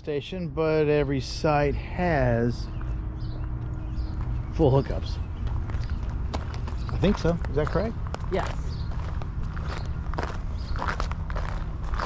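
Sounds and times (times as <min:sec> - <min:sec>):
footsteps on gravel: 0:02.8 - 0:12.0.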